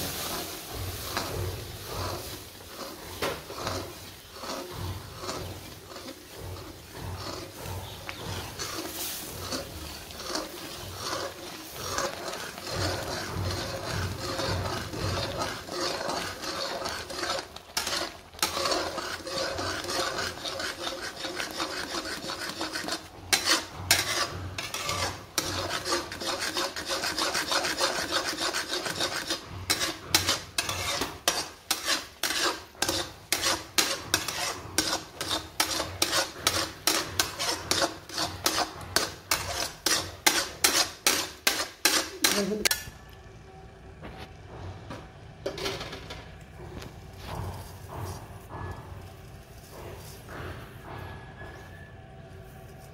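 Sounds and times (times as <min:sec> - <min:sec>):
metal spatula scraping metal pan: 0:00.0 - 0:42.9.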